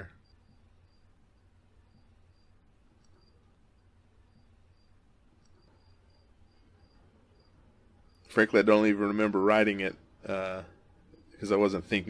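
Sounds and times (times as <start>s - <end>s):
cricket chirping: 0.0s - 12.0s.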